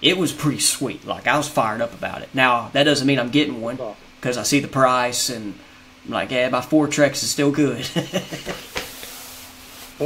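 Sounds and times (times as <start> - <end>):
faint hiss: 8.5 - 10.0.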